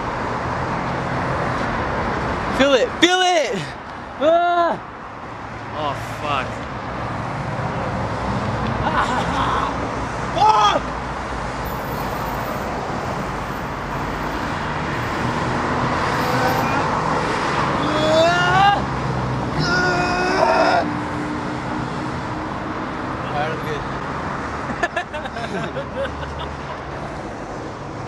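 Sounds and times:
cars driving past: 4.8 - 28.0.

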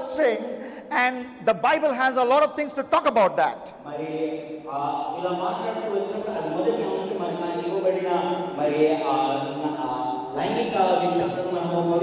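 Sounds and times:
man talking into microphone: 0.0 - 4.1, 4.7 - 12.0.

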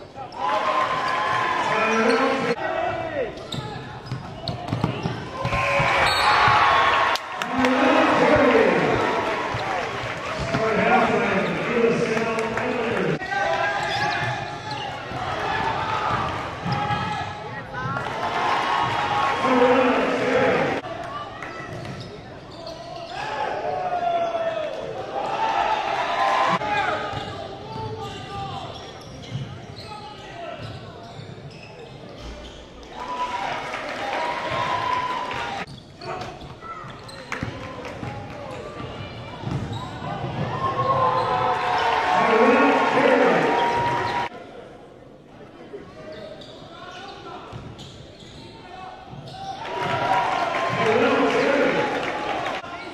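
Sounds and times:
voices echoing in a hall: 0.0 - 52.9.

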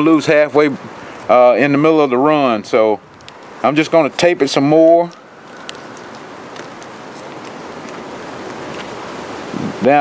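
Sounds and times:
electrical tape crackling off roll: 5.0 - 9.4.

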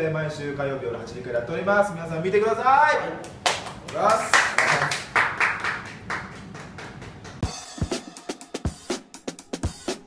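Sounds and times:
group clapping: 3.2 - 7.5.

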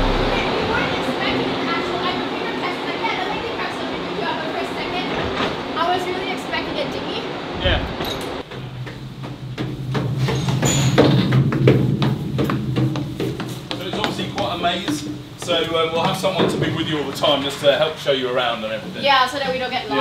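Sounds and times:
low machinery hum: 0.0 - 2.5
indistinct voices: 0.0 - 4.0
footsteps on steel stairs: 8.5 - 16.5.

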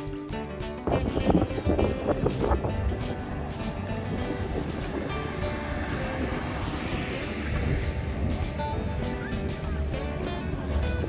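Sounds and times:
music with steady beat: 0.0 - 11.0
car engine rumble driving past: 1.0 - 11.0.

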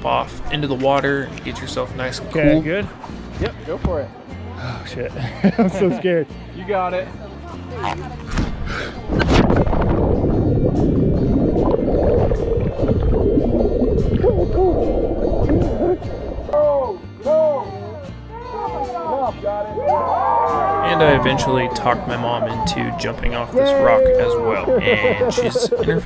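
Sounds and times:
splash into water: 8.4 - 16.2
churning water and bubbles underwater: 8.4 - 16.6
gurgling bubble chirps: 9.0 - 16.6.

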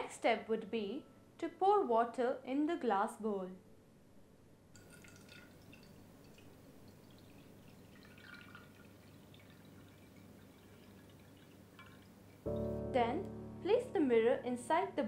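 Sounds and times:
water pouring into glass bowl: 4.8 - 12.7.

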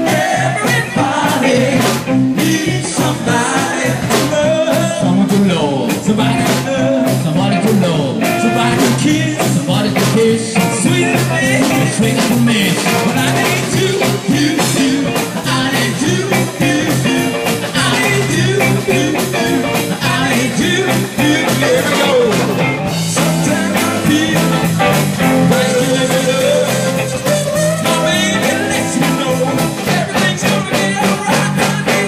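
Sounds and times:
live blues-rock band: 0.0 - 32.0.

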